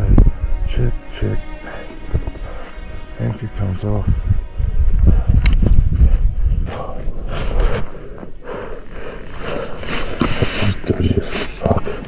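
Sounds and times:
wind buffeting microphone: 0:00.0 - 0:01.0, 0:02.0 - 0:09.0.

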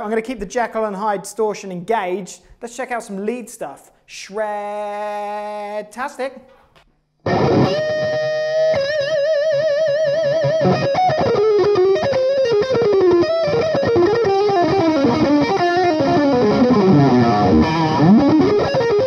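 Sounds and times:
distorted electric guitar lead: 0:07.2 - 0:19.0.

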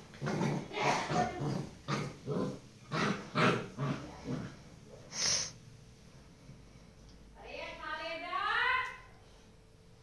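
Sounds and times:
dogs growling: 0:00.0 - 0:04.8.

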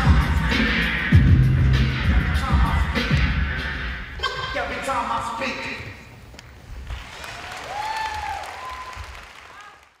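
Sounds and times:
audience applauding: 0:06.8 - 0:10.0
people cheering: 0:06.9 - 0:10.0.

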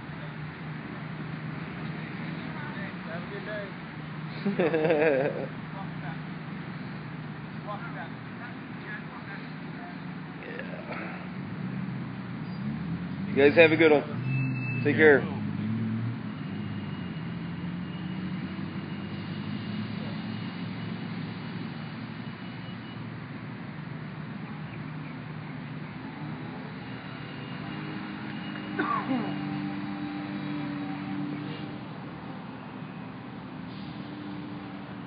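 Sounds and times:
street noise: 0:00.0 - 0:35.0.

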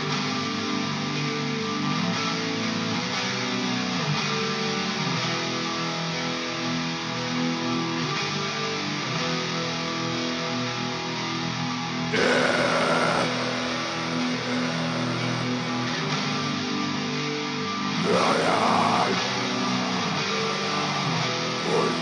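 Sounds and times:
black metal music: 0:12.0 - 0:22.0.

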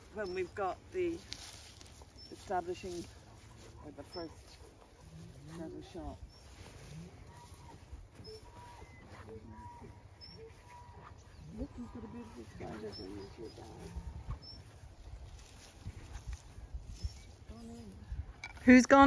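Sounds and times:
bird chirps: 0:06.2 - 0:14.8
murmured voices: 0:06.8 - 0:14.4
wind on microphone: 0:09.7 - 0:18.6.

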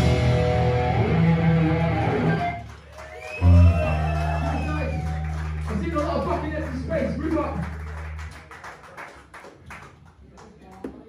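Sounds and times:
electric guitar and bass chords: 0:00.0 - 0:02.7, 0:03.4 - 0:08.3.

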